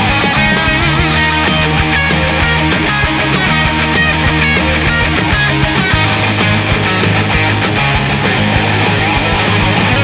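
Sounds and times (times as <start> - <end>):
rock band playing instrumental: 0.0 - 10.0.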